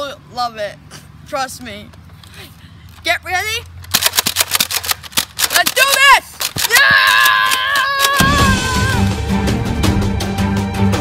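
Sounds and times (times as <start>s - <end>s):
rapid gunshots: 3.9s - 6.7s
person crying out: 6.6s - 9.1s
long high scream: 6.7s - 9.1s.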